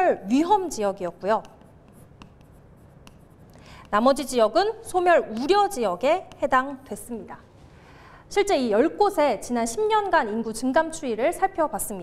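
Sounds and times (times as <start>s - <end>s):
pen tapping on glass screen: 1.4s - 4.0s, 6.2s - 6.6s.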